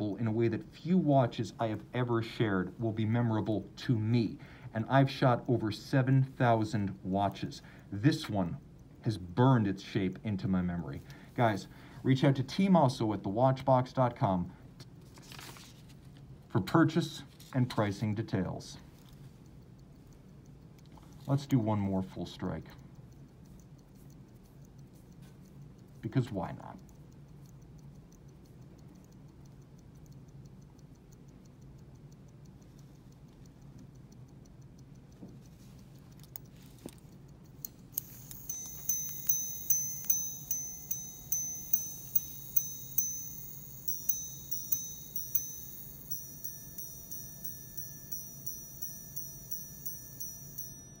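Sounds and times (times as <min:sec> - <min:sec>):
watch ticking: 0:00.0 - 0:12.7, 0:17.0 - 0:51.0
repeater chimes on gongs: 0:38.0 - 0:51.0.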